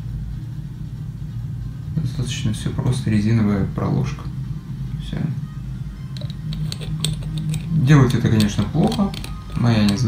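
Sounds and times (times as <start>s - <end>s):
spray head screwing onto bottle: 6.2s - 10.0s.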